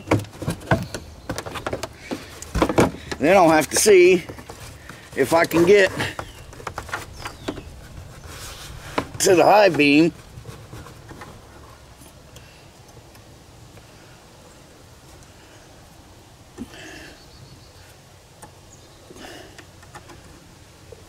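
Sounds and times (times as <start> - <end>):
faint handling sounds: 0.3 - 14.0.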